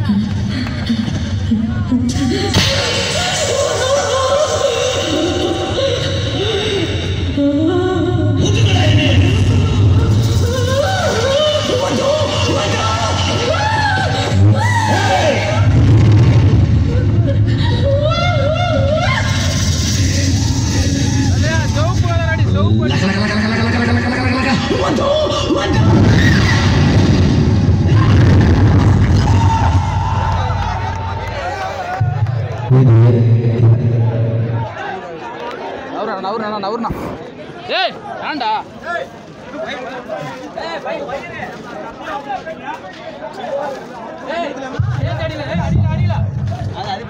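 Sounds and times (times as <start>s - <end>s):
people talking over one another: 0.0s - 47.0s
deep bass rumble: 15.4s - 34.7s.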